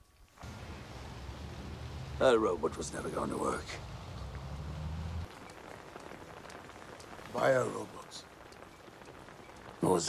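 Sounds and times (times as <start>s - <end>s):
faint steady hiss: 0.0s - 10.0s
soft ticks: 8.4s - 9.7s.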